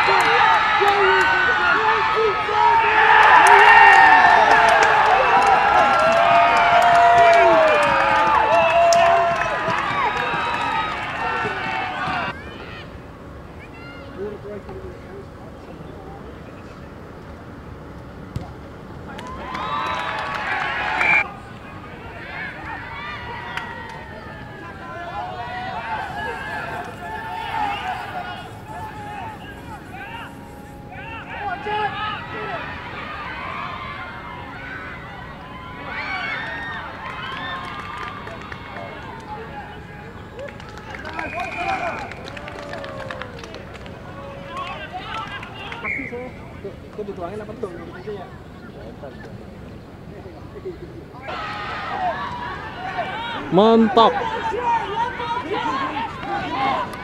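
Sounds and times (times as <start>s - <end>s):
players shouting: 0.0s - 13.0s, 19.1s - 47.2s, 51.2s - 57.0s
crowd shouting and cheering: 0.0s - 14.5s, 19.1s - 48.2s, 51.2s - 57.0s
spectators calling out and talking: 0.0s - 57.0s.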